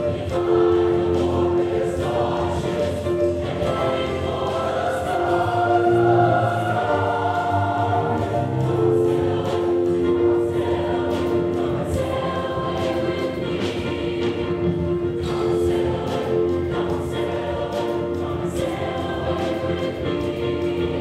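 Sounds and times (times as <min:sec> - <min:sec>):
large mixed choir singing: 0:00.0 - 0:21.0.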